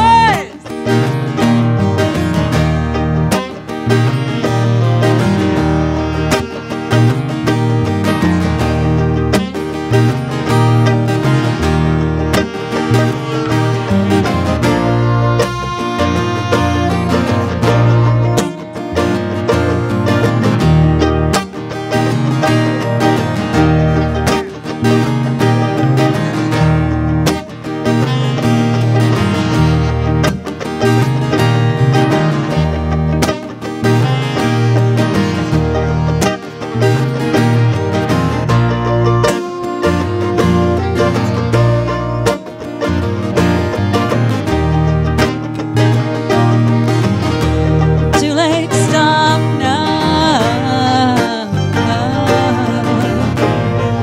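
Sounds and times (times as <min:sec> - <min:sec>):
electric bass guitar: 0:00.0 - 0:54.0
saxophones playing: 0:00.0 - 0:54.0
strummed acoustic guitar: 0:00.0 - 0:54.0.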